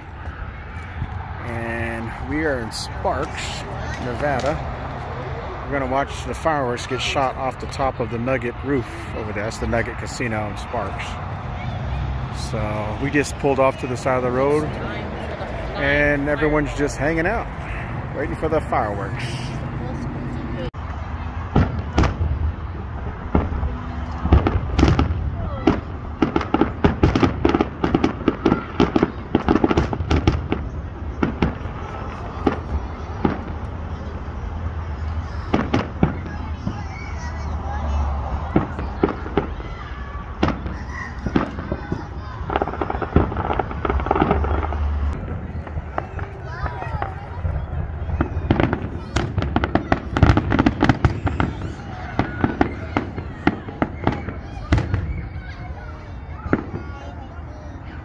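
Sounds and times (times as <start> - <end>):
firework bangs and crackling: 0.0 - 58.0.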